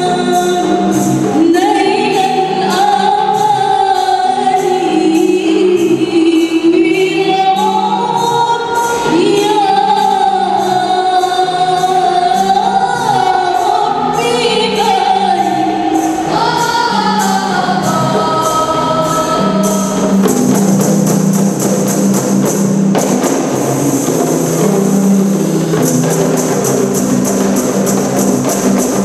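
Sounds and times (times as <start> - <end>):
young women singing together: 0.0 - 20.3
frame drums beating: 0.0 - 29.0.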